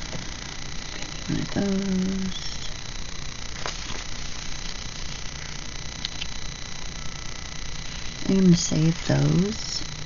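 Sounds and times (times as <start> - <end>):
steady low hum: 0.0 - 10.0
sticker sheets rustling: 3.6 - 5.2.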